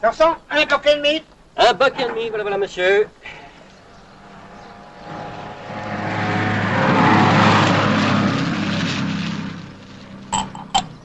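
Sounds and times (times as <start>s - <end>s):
engine drone: 3.3s - 11.0s.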